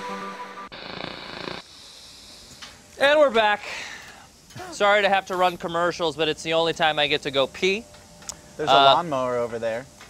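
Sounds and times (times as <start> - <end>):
tv static hiss: 0.6 - 3.6
faint hiss: 1.6 - 10.0.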